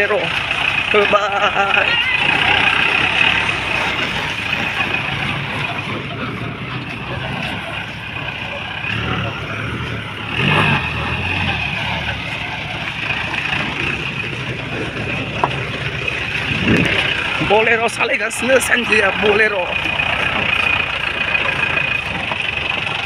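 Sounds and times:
jeep engine running: 0.0s - 23.0s
tyres on gravel road: 0.0s - 23.0s.

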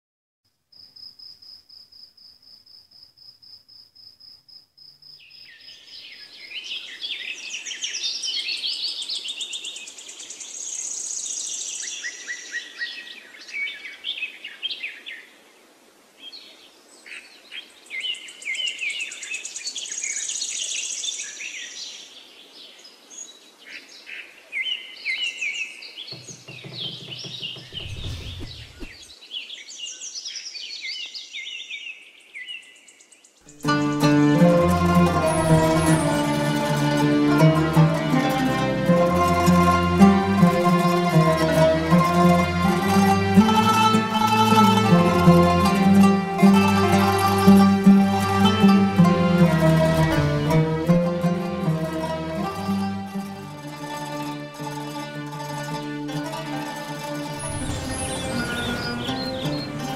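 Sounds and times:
crickets chirping: 0.6s - 5.7s
birds chirping and singing: 25.2s - 31.7s, 57.3s - 59.9s
low rumble: 27.6s - 29.0s, 57.4s - 59.9s.

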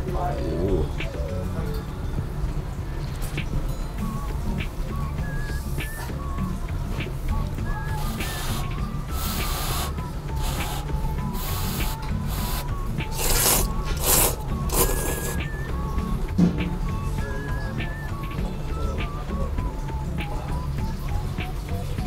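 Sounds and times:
background music with steady beat: 0.0s - 22.0s
person slurping noodles: 12.4s - 15.4s.

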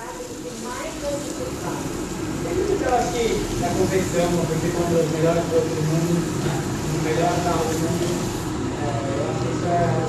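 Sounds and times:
grain pouring into liquid: 0.0s - 8.6s.

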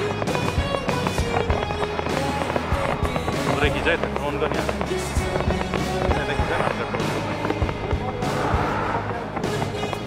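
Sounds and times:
fireworks bangs: 0.0s - 10.0s
music: 0.0s - 10.0s.

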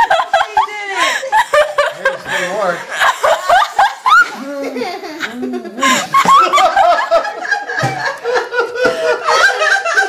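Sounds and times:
people laughing: 0.0s - 10.0s.

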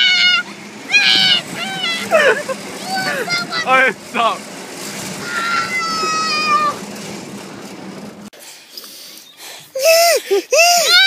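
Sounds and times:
high-pitched squeal: 0.0s - 8.1s
rushing noise: 0.0s - 8.3s.

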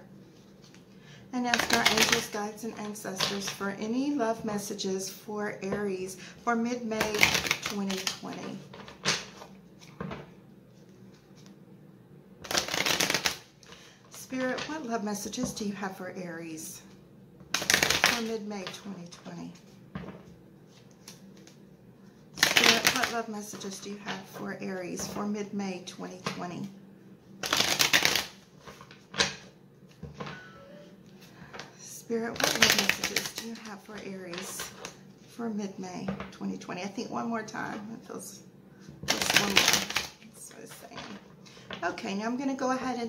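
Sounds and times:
cards being shuffled: 1.5s - 2.4s, 7.0s - 11.6s, 12.4s - 13.8s, 17.5s - 18.8s, 22.4s - 23.7s, 27.4s - 30.3s, 32.4s - 35.0s, 39.0s - 41.2s.

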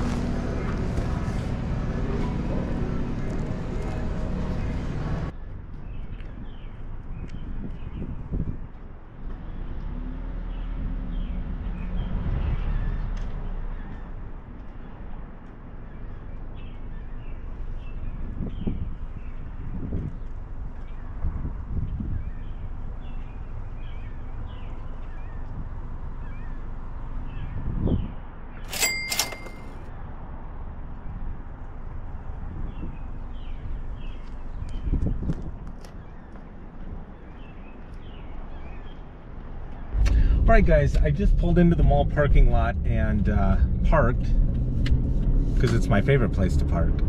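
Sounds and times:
low rumble: 0.0s - 5.4s, 39.7s - 47.0s
small birds chirping: 1.3s - 8.5s, 10.5s - 28.3s, 32.6s - 40.4s.

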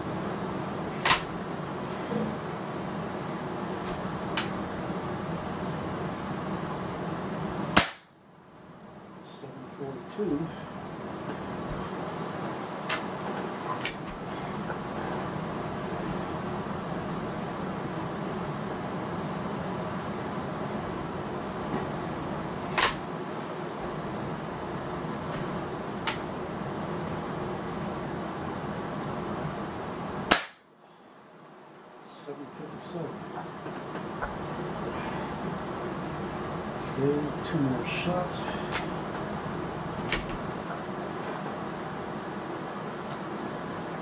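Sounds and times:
air rifle shot: 7.8s - 8.1s, 30.3s - 30.7s.

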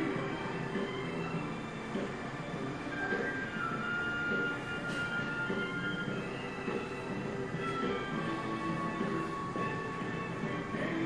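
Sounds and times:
background music: 0.0s - 11.0s
room noise: 0.0s - 11.0s.

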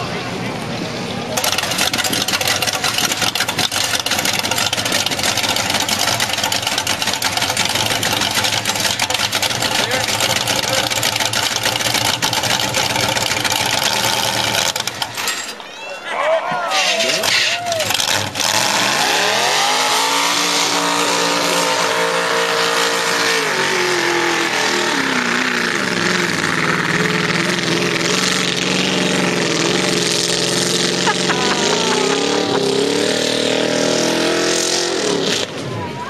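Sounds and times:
tires churning through mud: 0.0s - 15.2s, 16.7s - 36.0s
engine revving hard: 1.4s - 15.0s, 17.0s - 35.6s.

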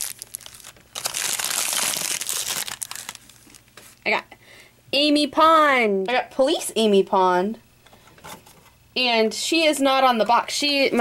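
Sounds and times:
plastic wrapping crinkling: 0.0s - 4.0s.

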